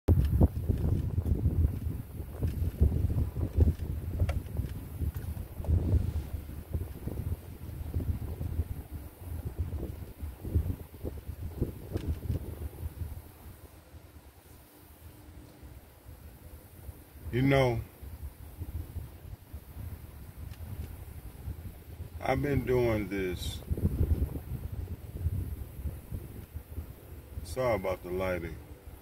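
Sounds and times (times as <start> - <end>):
wind buffeting microphone: 0.1 - 29.0.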